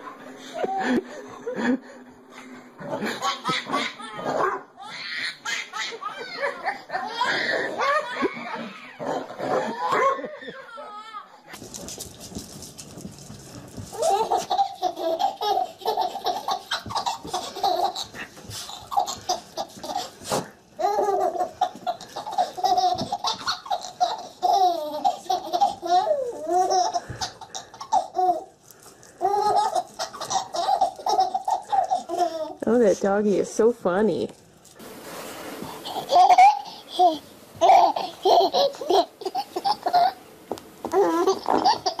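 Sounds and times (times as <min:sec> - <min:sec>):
baby laughing hard: 0:02.9 - 0:11.4, 0:13.9 - 0:20.2, 0:20.8 - 0:28.5, 0:29.2 - 0:32.6, 0:35.8 - 0:40.2, 0:40.9 - 0:42.0.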